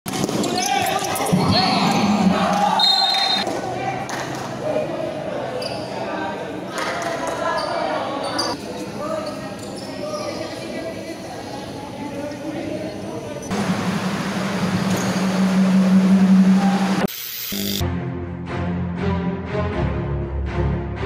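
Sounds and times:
people shouting and talking: 0:00.1 - 0:13.6
referee's whistle blast: 0:02.8 - 0:03.4
sneaker squeaks: 0:05.6 - 0:06.0, 0:07.3 - 0:10.6.

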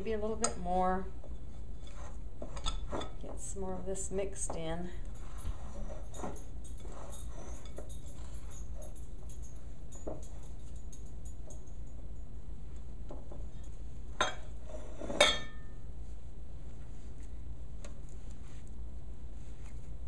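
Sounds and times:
hands working sticky dough: 0:00.0 - 0:10.8, 0:15.9 - 0:20.0.

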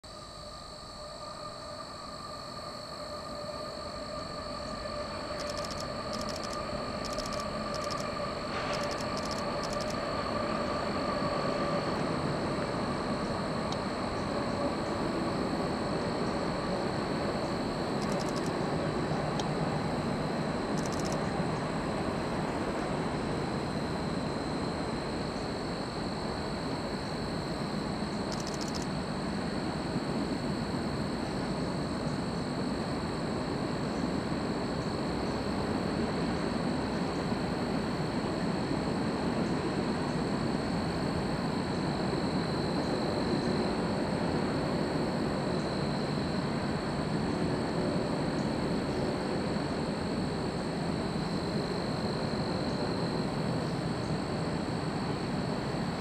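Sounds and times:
steady high whine: 0:00.0 - 0:56.0.

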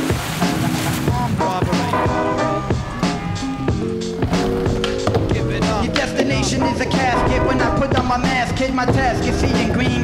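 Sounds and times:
hip-hop beat: 0:00.0 - 0:10.0
skateboard rolling: 0:02.0 - 0:10.0
skateboard tail popping: 0:04.2 - 0:06.2
rapping: 0:05.2 - 0:10.0.

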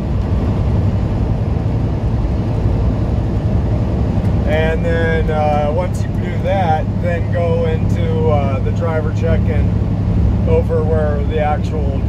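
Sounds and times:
road noise: 0:00.0 - 0:12.0
truck engine drone: 0:00.0 - 0:12.0.

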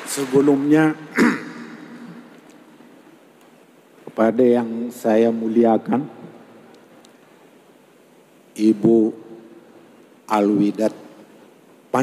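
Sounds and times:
man speaking: 0:00.0 - 0:02.2, 0:08.6 - 0:09.4
room tone hiss: 0:00.0 - 0:12.0.

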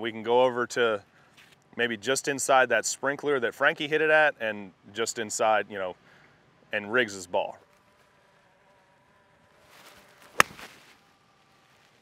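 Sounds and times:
golf club swish: 0:09.6 - 0:10.9
golf club striking ball: 0:10.3 - 0:10.7.

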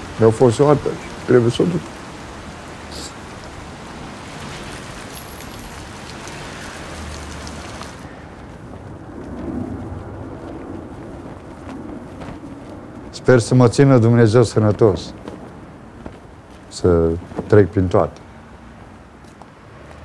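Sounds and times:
city street traffic: 0:00.0 - 0:20.0
vehicle passing: 0:00.0 - 0:20.0.

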